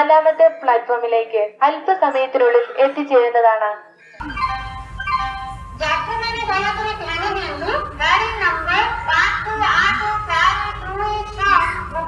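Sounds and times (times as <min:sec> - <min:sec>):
electronic chime tones: 0:04.1 - 0:10.9
announcer speaking: 0:04.2 - 0:12.0
low rumble: 0:04.2 - 0:12.0.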